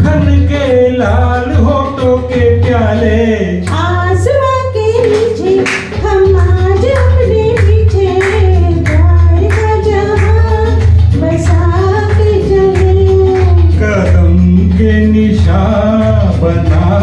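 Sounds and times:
backing track with beat and bass: 0.0 - 17.0
woman singing into microphone: 3.7 - 13.8.

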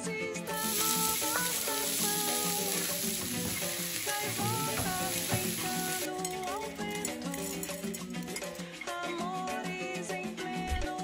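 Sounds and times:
background music: 0.0 - 11.0
onion sizzling in hot oil: 0.5 - 6.1.

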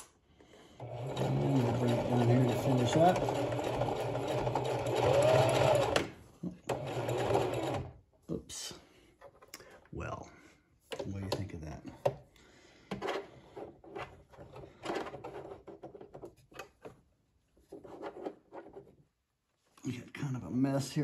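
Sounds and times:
sewing machine stitching: 0.8 - 8.0.

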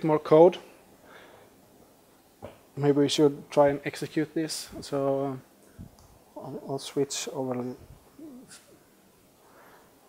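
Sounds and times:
man humming: 7.8 - 8.7.

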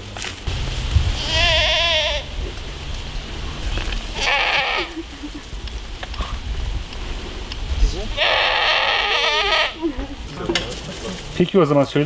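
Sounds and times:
goat bleating: 1.2 - 2.4, 4.1 - 5.3, 8.1 - 10.3.

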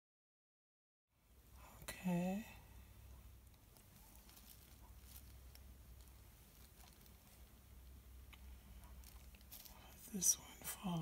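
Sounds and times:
faint low hum: 1.2 - 11.0
soft ticks from handling canvas: 3.4 - 8.0, 8.8 - 10.4.

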